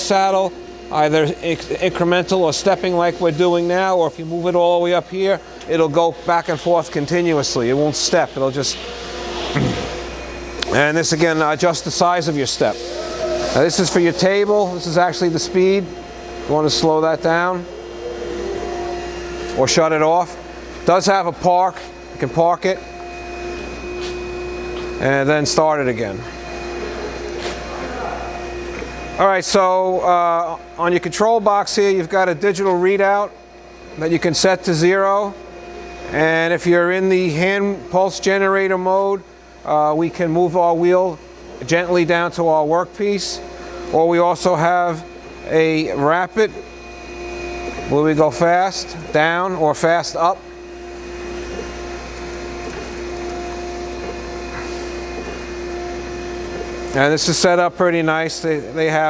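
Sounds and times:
grinder machine humming: 0.0s - 59.0s.

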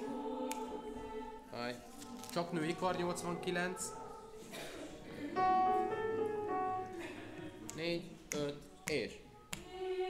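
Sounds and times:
women's choir holding a chord: 0.0s - 2.1s, 9.6s - 10.0s.

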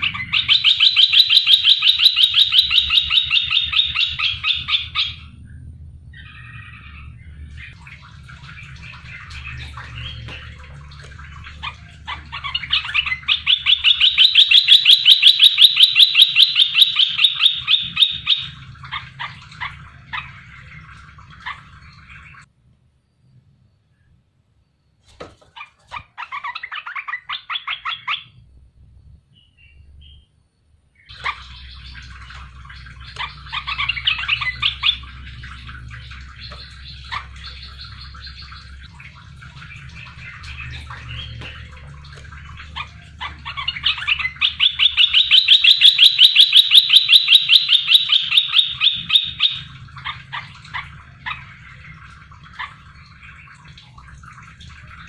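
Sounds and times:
bulbul singing: 0.0s - 22.5s, 31.0s - 55.0s
low steady hum: 0.0s - 55.0s.

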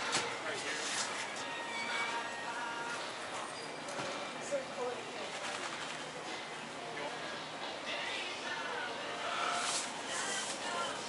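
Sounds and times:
room noise: 8.0s - 11.0s.

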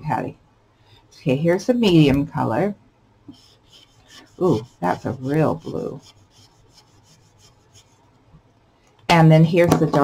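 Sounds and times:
marker scratching on card: 3.3s - 8.0s.

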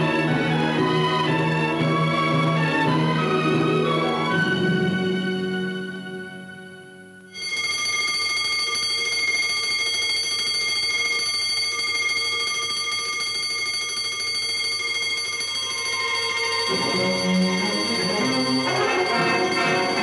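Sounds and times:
orchestral film music: 0.0s - 7.0s, 16.7s - 20.0s
electric alarm bell ringing: 7.3s - 20.0s.

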